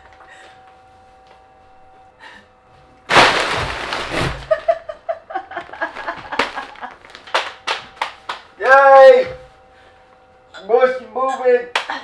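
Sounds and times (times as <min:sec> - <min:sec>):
plastic bags crinkling and rustling: 0:03.1 - 0:04.9, 0:05.6 - 0:08.2.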